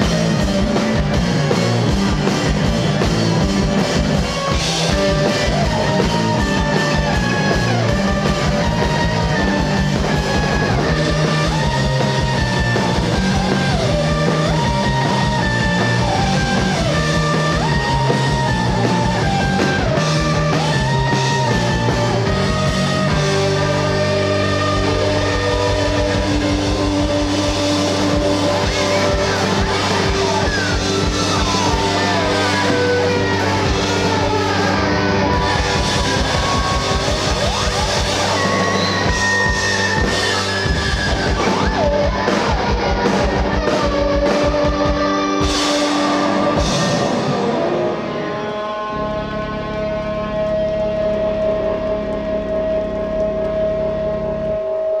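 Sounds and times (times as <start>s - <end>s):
bass and drums pulse: 0.0s - 55.0s
rock band holding a chord: 0.0s - 55.0s.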